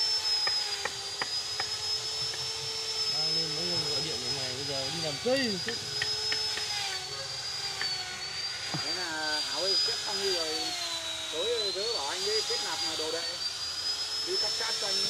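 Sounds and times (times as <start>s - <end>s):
small motor whining: 0.0s - 15.0s
people talking: 3.1s - 5.8s, 8.8s - 10.7s, 11.4s - 13.4s, 14.3s - 15.0s.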